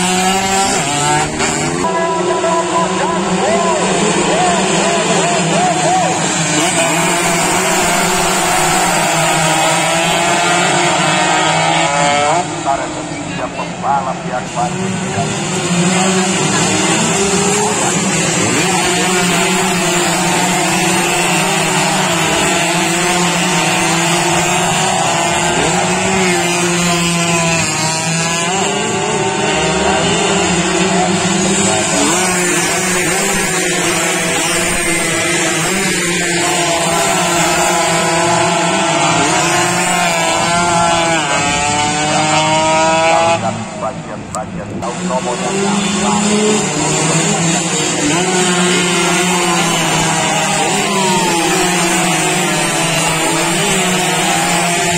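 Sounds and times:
racing motorcycles passing: 0:00.0 - 0:54.9.

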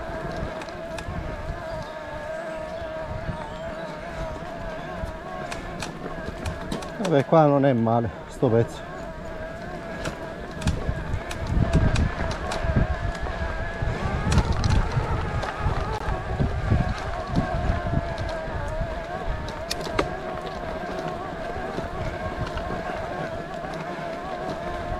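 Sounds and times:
wind buffeting microphone: 0:00.0 - 0:24.9
engine whine: 0:08.1 - 0:24.9.

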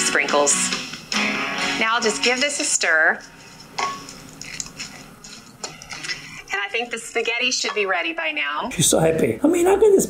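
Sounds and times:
utensil stirring in bowl: 0:02.1 - 0:07.8.

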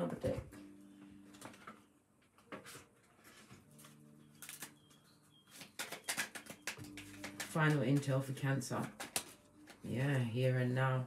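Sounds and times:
cards being shuffled: 0:02.6 - 0:04.9, 0:05.5 - 0:09.9.

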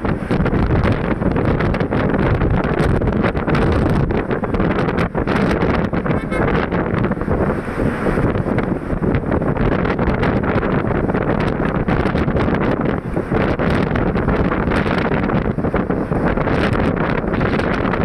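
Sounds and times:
road and engine noise: 0:00.0 - 0:18.0
wind rushing on microphone: 0:00.0 - 0:18.0.

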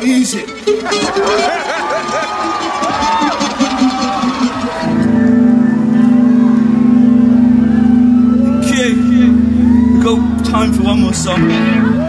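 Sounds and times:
crowd shouting: 0:00.8 - 0:12.0
band holding low organ-like chord: 0:03.6 - 0:12.0.

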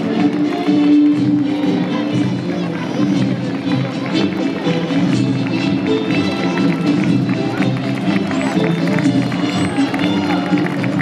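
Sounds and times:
military march music: 0:00.0 - 0:11.0.

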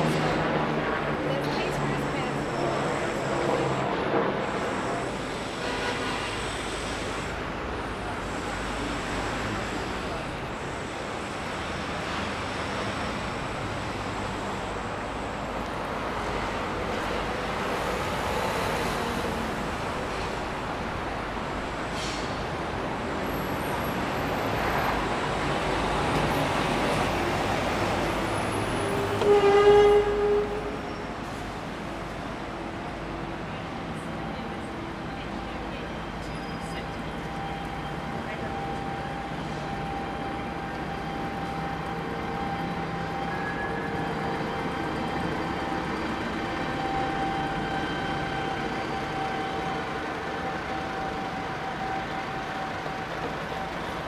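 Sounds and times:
traffic and passing vehicles: 0:00.0 - 0:54.0
voices of passers-by: 0:00.0 - 0:54.0
car horn toot: 0:29.1 - 0:30.7.

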